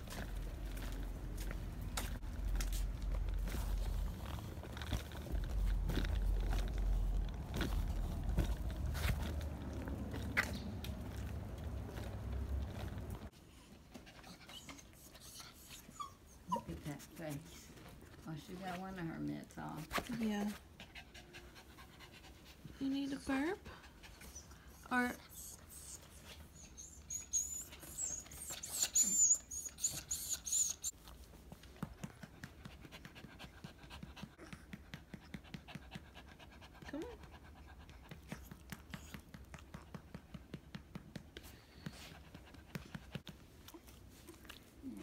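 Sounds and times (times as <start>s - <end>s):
small dog whimpering: 14.2s - 16.9s, 24.2s - 30.9s, 43.7s - 45.0s
dog panting: 18.3s - 45.0s.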